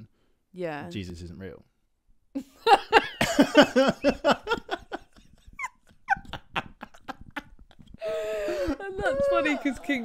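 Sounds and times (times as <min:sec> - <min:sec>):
man and woman laughing: 0:02.4 - 0:10.0.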